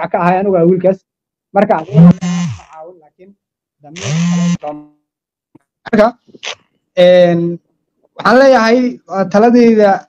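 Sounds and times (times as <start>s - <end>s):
man speaking: 1.6s - 5.0s, 7.0s - 10.0s.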